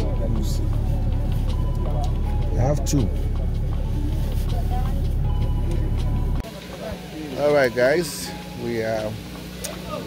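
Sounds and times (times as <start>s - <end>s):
car engine idling: 0.0s - 10.0s
faint voices: 0.0s - 10.0s.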